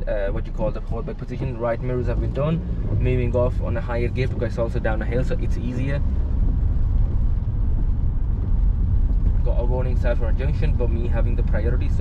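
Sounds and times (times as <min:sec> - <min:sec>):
car engine rumble: 0:00.0 - 0:12.0
tyres rolling on road: 0:00.0 - 0:12.0.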